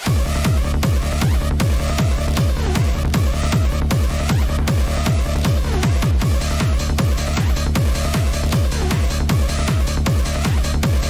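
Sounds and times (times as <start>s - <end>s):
fast kick drum: 0.0s - 11.0s.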